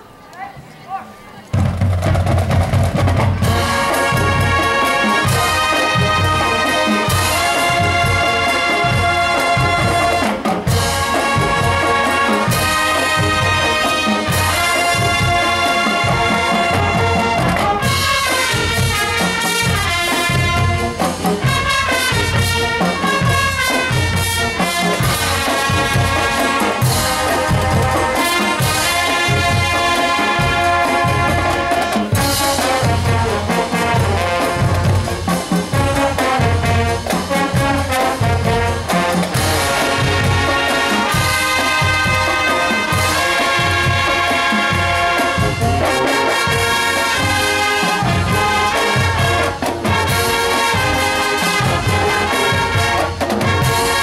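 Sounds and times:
marching band playing: 0:00.0 - 0:54.0
drumline steady beat: 0:00.4 - 0:54.0
trumpets and trombones playing tune: 0:01.7 - 0:54.0.

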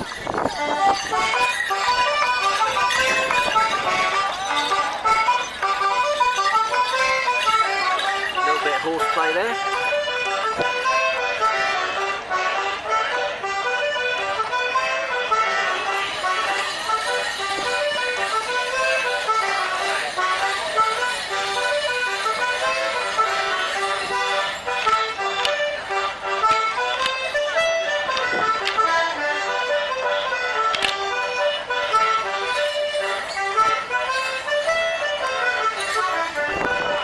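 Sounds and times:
accordion dance tune: 0:00.0 - 0:37.0.

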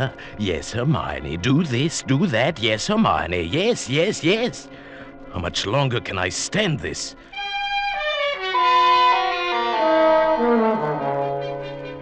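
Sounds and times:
brass-led orchestral music: 0:07.3 - 0:12.0.

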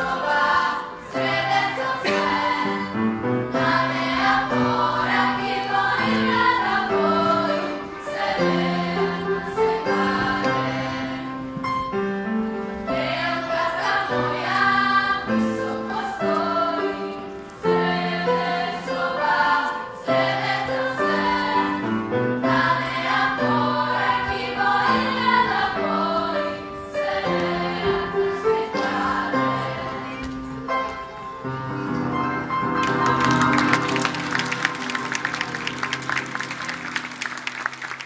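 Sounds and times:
children's choir singing: 0:00.0 - 0:37.0
music accompaniment: 0:00.0 - 0:38.0.

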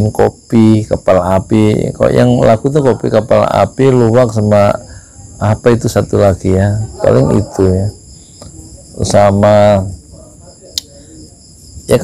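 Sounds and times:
man talking: 0:00.0 - 0:08.0, 0:08.8 - 0:12.0
insects trilling: 0:00.0 - 0:12.0.

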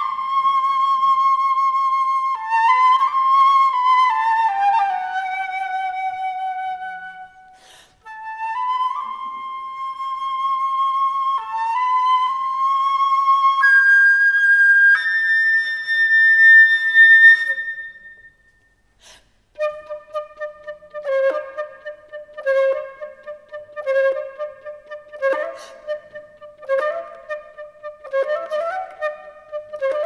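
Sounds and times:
solo flute long note: 0:00.0 - 0:18.4.

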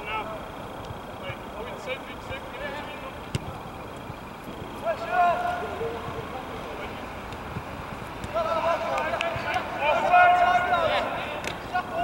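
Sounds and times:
outdoor background hiss: 0:00.0 - 0:12.0
players shouting: 0:01.2 - 0:12.0.

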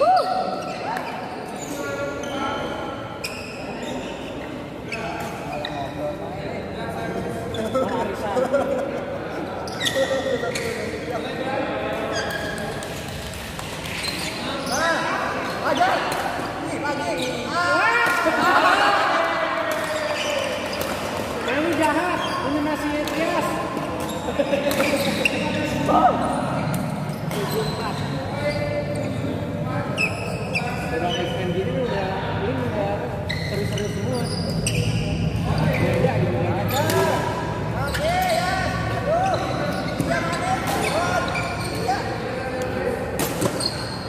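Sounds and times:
spectators' voices and shouts: 0:14.4 - 0:24.0.

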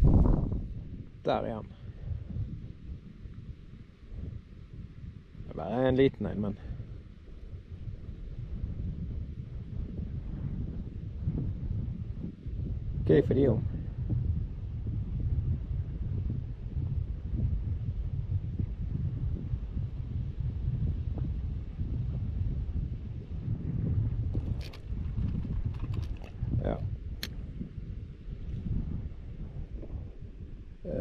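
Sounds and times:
wind buffeting microphone: 0:00.0 - 0:31.0
light clicks and taps: 0:24.4 - 0:26.4.

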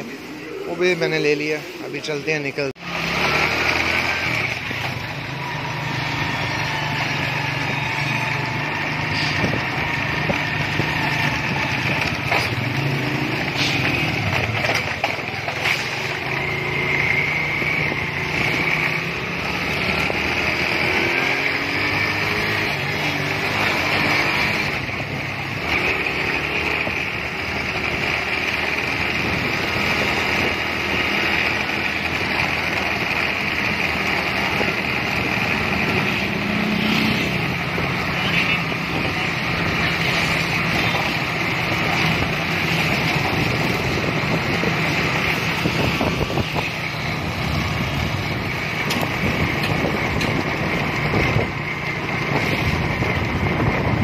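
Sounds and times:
road traffic: 0:00.0 - 0:54.0
vehicle engine running: 0:02.8 - 0:54.0
wind noise on microphone: 0:09.0 - 0:12.5, 0:29.0 - 0:31.0, 0:37.5 - 0:40.8, 0:41.6 - 0:54.0.

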